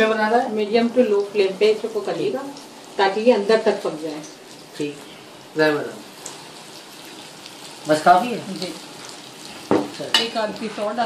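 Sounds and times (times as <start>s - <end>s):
fish sizzling in hot oil: 0.0s - 11.0s.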